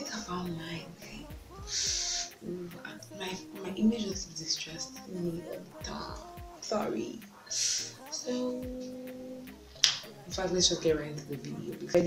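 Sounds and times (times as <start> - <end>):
woman humming: 0.7 - 6.6, 7.9 - 10.8.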